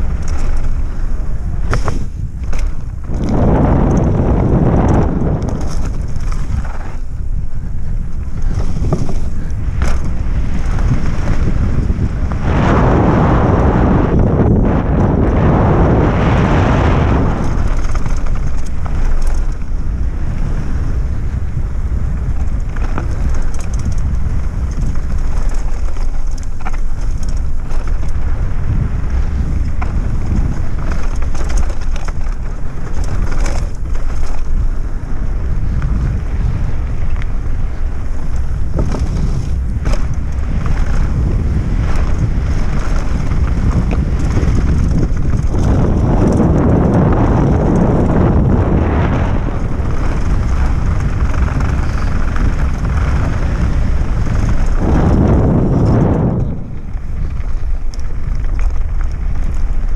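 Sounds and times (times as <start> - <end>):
bike knocks and rattles: 0.0 - 59.9
tyres rumbling on dirt: 0.0 - 59.9
wind buffeting microphone: 0.0 - 59.9.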